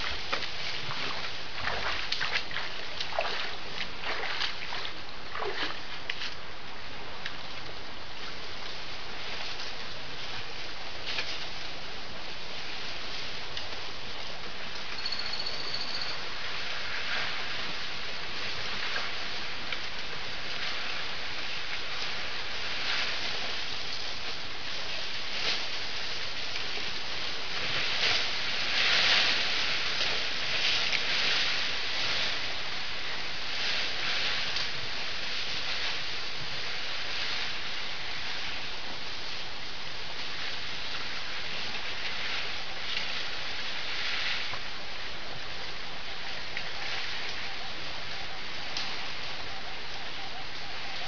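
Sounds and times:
elephant feet splashing in water: 0.0s - 6.5s
steady background hiss: 0.0s - 51.0s
thin high whistle: 15.0s - 16.3s.

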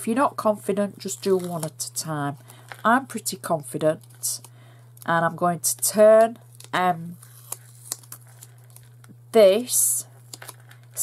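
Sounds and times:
cardstock rustling: 1.0s - 2.9s, 5.6s - 9.0s.

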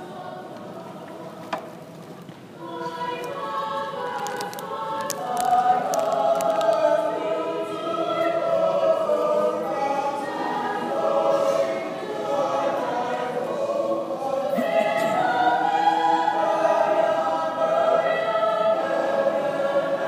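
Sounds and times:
choir singing in auditorium: 0.0s - 20.0s.

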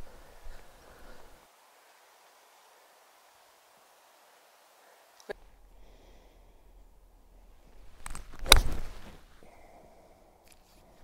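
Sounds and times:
golf club swish: 8.2s - 9.4s.

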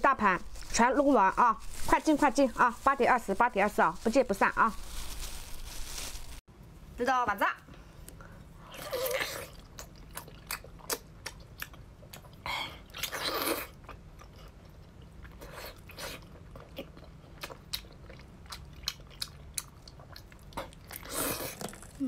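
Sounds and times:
wet chewing and mouth clicks: 8.9s - 21.8s.

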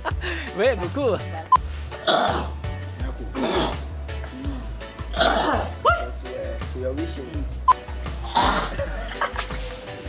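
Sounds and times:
background music: 0.0s - 10.0s
man coughing and clearing throat: 2.0s - 2.6s, 3.4s - 3.8s, 5.1s - 5.7s, 8.2s - 9.4s.

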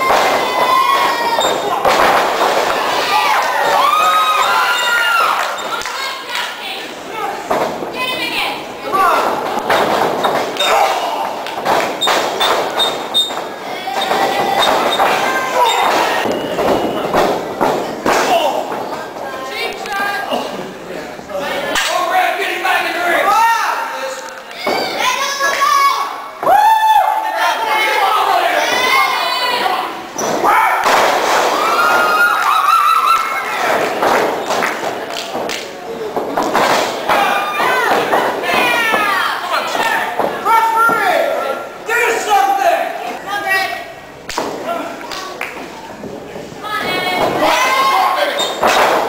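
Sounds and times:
wrestlers thudding on ring: 0.0s - 3.8s, 9.0s - 19.2s, 30.2s - 32.3s, 33.6s - 41.1s, 46.8s - 49.0s
voices in a hall: 0.0s - 49.0s
voices shouting: 2.7s - 9.5s, 13.2s - 16.9s.

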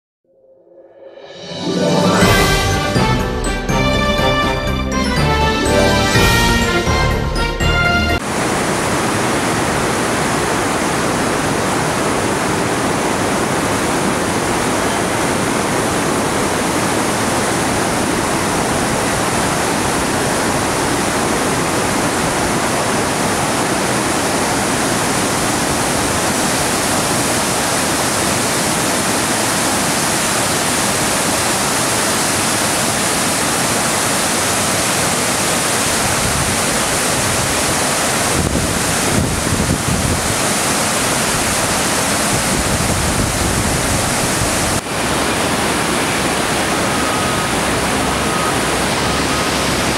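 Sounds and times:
floodwater rushing: 1.6s - 49.9s.

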